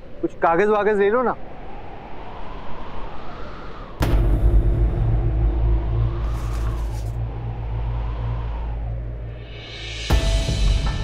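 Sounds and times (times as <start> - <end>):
low rumbling drone score: 1.5 - 11.0.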